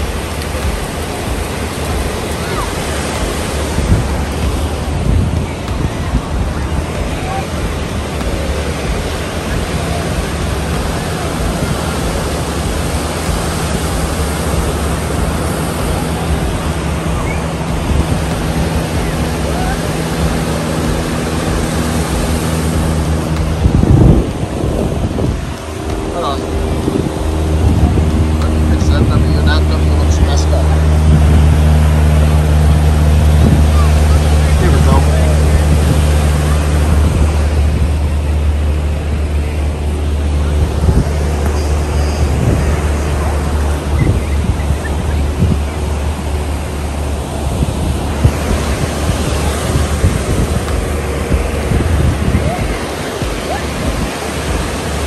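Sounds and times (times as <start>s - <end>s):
low engine-like drone: 0.0s - 55.0s
surf rushing: 0.0s - 55.0s
wind buffeting microphone: 0.0s - 55.0s.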